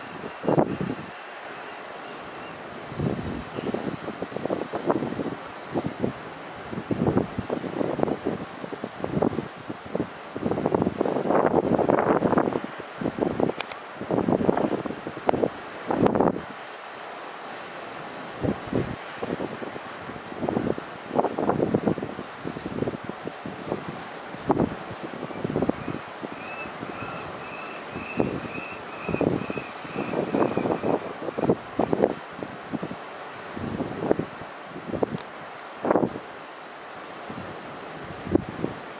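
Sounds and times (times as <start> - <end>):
wind buffeting microphone: 0.0 - 1.2, 2.4 - 16.6, 18.0 - 36.3, 37.2 - 38.9.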